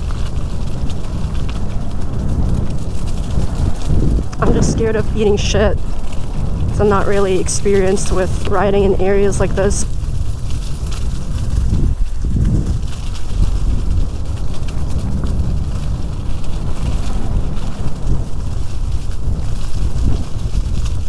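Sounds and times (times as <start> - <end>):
tyres rumbling over dirt trail: 0.0 - 21.0
wind rushing over microphone: 0.0 - 21.0.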